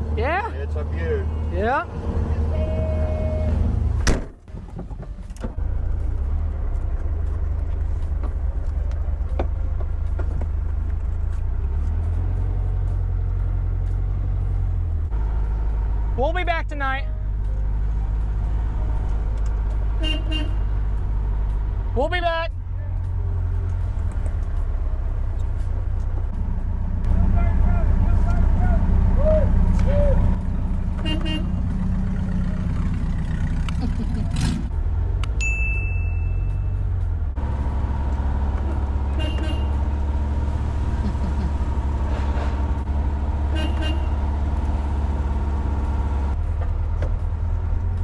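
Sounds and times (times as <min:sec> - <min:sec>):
car engine running at low speed: 0:00.0 - 0:48.0
whooping shouts: 0:28.5 - 0:30.4.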